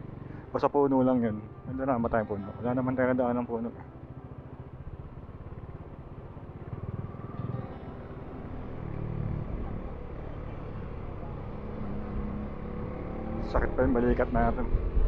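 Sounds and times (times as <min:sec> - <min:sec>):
motorcycle engine rumbling: 0:00.0 - 0:15.0.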